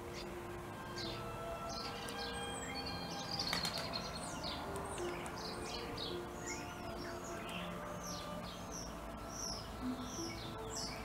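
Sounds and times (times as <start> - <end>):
birds chirping: 0.0 - 11.0
slow long-held music notes: 0.0 - 11.0.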